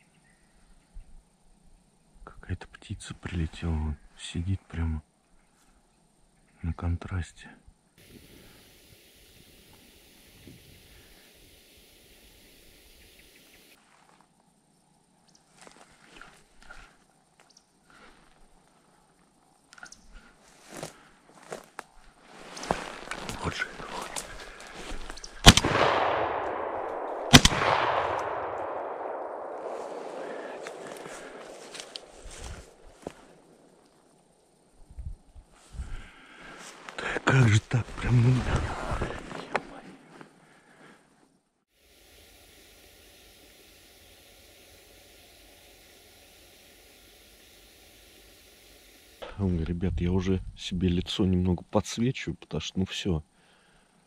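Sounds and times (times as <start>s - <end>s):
rustling handling noise: 20.4s - 25.3s
shotgun shots with echo: 25.4s - 31.5s.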